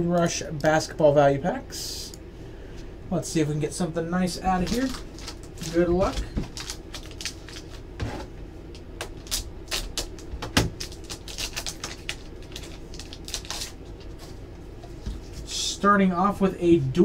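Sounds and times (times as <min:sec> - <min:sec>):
cards rustling: 0:04.5 - 0:07.8, 0:09.1 - 0:14.4
foil wrapper crinkling: 0:04.5 - 0:07.9, 0:09.0 - 0:14.3.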